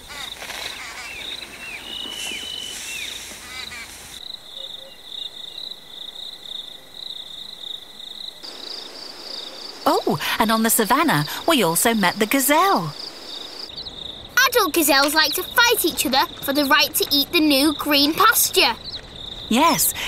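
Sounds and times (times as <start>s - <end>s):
bird whistling calls: 0.1s - 4.0s
pulsing insect trill: 0.1s - 20.0s.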